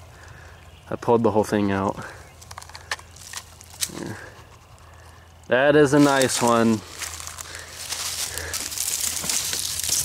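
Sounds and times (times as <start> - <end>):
twigs and leaves crackling: 1.4 - 10.0.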